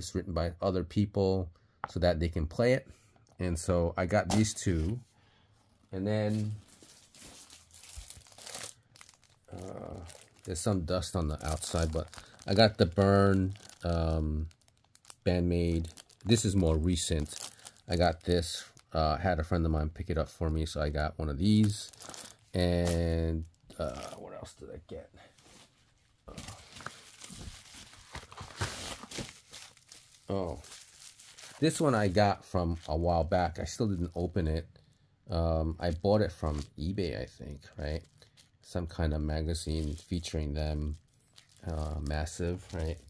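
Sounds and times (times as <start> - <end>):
plastic packaging crinkling: 6.1 - 24.2, 25.4 - 34.4, 37.7 - 43.0.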